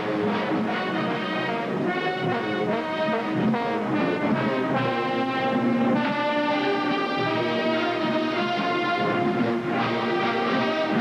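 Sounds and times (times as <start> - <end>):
marching band brass playing chords: 0.0 - 11.0.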